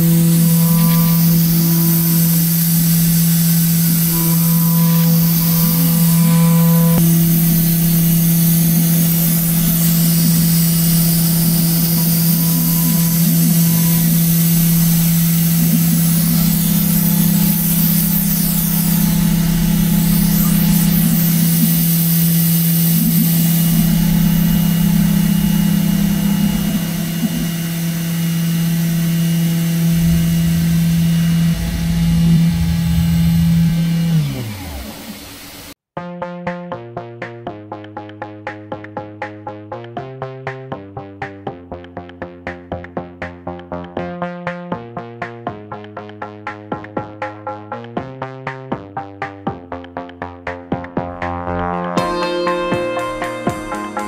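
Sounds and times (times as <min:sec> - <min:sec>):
cutting noise: 0:00.0 - 0:28.8
milling machine spindle whine: 0:00.0 - 0:35.8.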